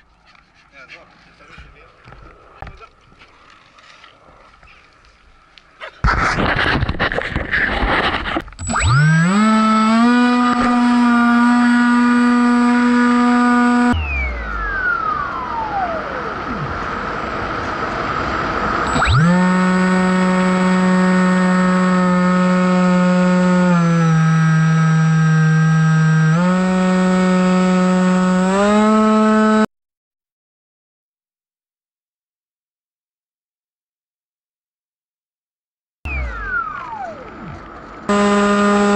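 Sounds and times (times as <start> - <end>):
model plane motor and propeller: 6.5 - 29.7, 36.1 - 38.9.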